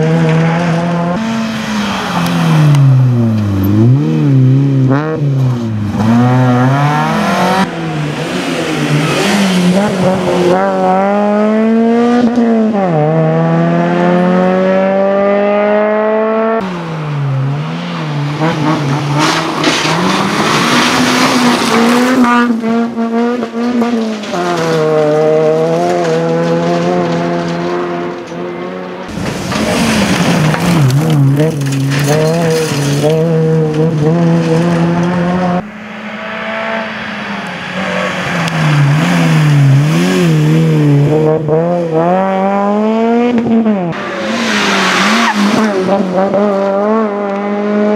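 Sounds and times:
rally car engine revving: 0:00.0 - 0:47.9.

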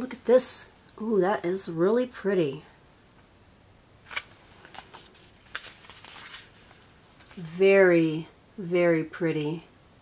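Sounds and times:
paper pages rustling: 0:04.0 - 0:07.5.

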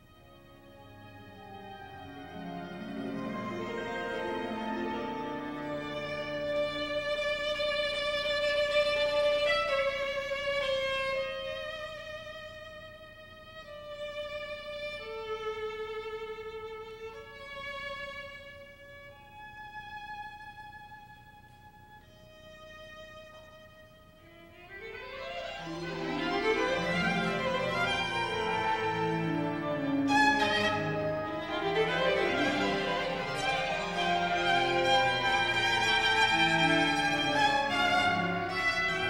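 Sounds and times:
solo violin playing: 0:00.0 - 0:39.0.

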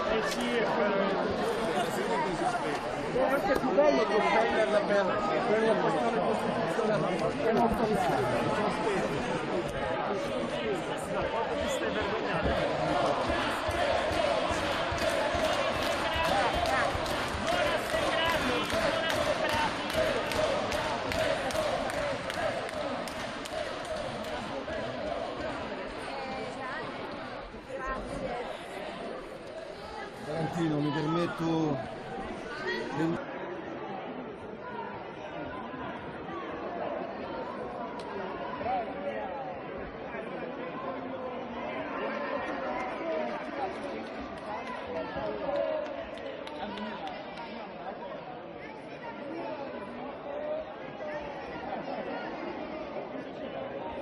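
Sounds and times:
crowd chatter: 0:00.0 - 0:54.0
hubbub of people talking: 0:00.0 - 0:54.0.

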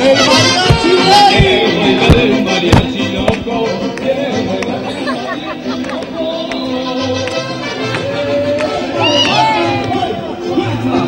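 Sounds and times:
mariachi band playing: 0:00.0 - 0:11.0.

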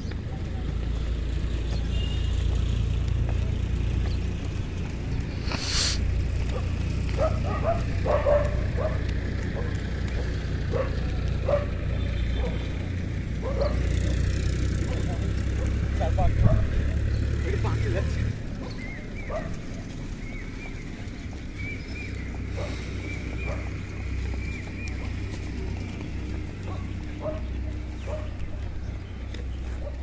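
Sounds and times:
distant short calls: 0:05.4 - 0:06.1
wind buffeting microphone: 0:15.7 - 0:17.4.

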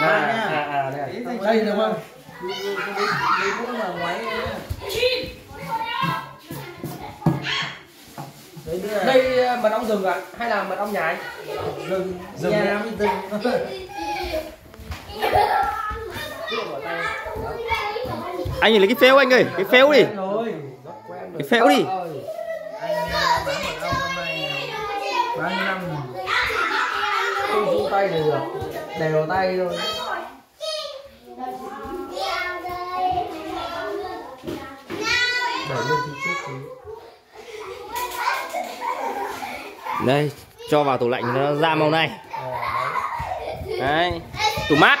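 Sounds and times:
indistinct chatter with children: 0:00.0 - 0:45.0.

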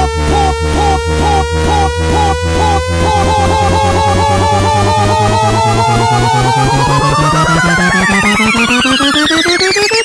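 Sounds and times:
fast repeating beat pulses: 0:00.0 - 0:10.0
synthesizer tone rising in pitch: 0:00.0 - 0:10.0.

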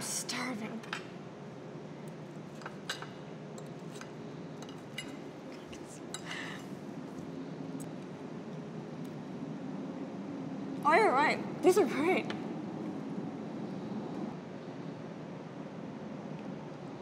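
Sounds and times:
cutlery clinking on a plate: 0:02.5 - 0:06.7.

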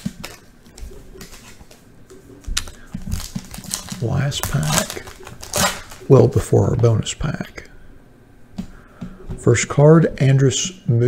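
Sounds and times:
foil wrapper tearing: 0:02.5 - 0:06.3.

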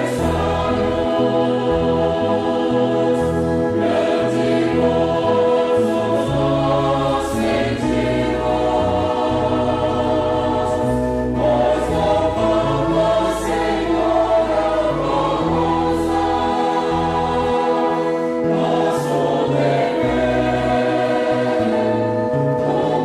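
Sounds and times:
choir singing a hymn: 0:00.0 - 0:23.0.

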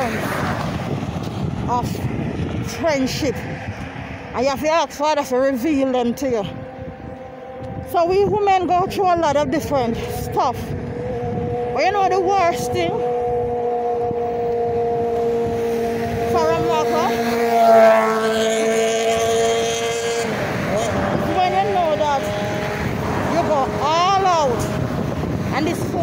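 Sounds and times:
road traffic engine hum: 0:00.0 - 0:26.0.

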